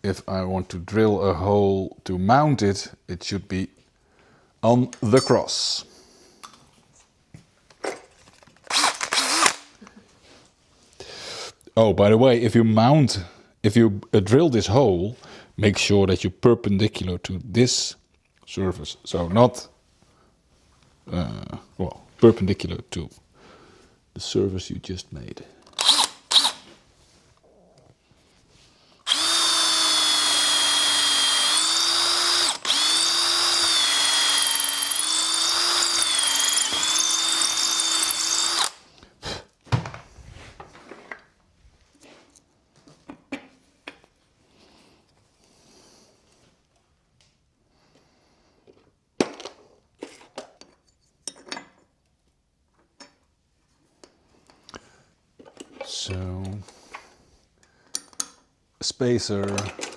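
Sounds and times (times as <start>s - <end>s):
cordless drill boring into wood: 8.7s - 9.7s, 25.8s - 26.6s, 29.1s - 38.8s.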